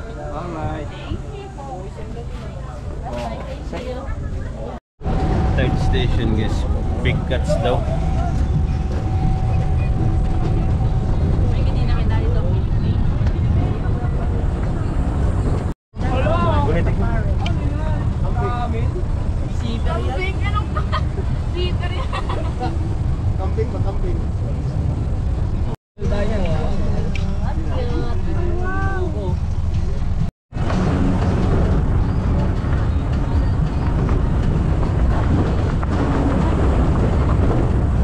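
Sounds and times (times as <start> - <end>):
people talking: 0.0 - 4.8, 5.5 - 8.6, 9.5 - 15.1, 16.0 - 22.8
tram rumbling: 0.0 - 38.0.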